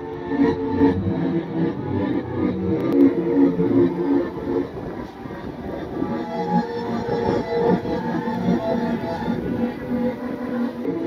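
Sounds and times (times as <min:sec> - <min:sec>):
music playing: 0:00.0 - 0:11.0
steady rumbling noise: 0:00.0 - 0:11.0.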